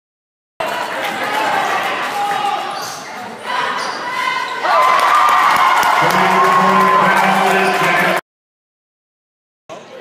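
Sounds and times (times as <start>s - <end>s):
voices of players and spectators: 0.6s - 8.2s, 9.7s - 10.0s.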